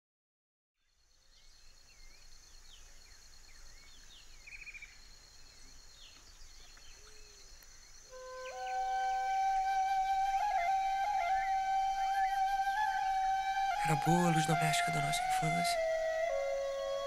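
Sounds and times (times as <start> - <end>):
bird chirps: 0.8 - 17.0
bird trill: 8.1 - 17.0
flute long held notes: 8.1 - 17.0
thin steady high tone: 8.2 - 17.0.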